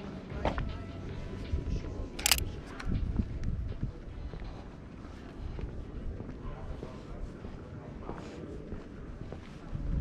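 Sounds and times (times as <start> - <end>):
low street background: 0.0 - 10.0
camera shutter click: 2.2 - 2.4.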